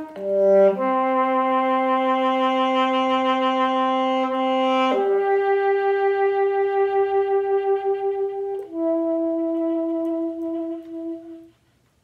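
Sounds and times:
alto saxophone long note: 0.0 - 11.5.

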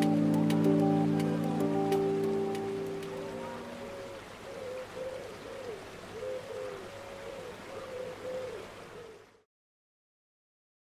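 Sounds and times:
background music: 0.0 - 4.0
steady hiss: 0.0 - 9.1
bird cooing: 2.9 - 9.4.

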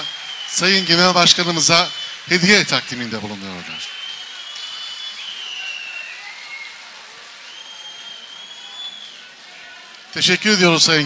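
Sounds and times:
long high whistles: 0.0 - 9.4
audience applauding: 0.0 - 11.0.

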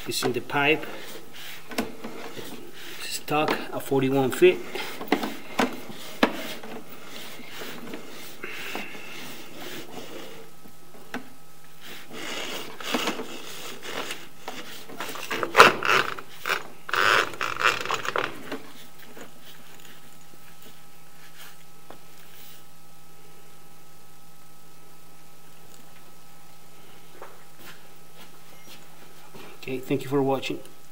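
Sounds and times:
faint steady hum: 0.0 - 30.9
cable scraping through pipe: 11.8 - 18.8.

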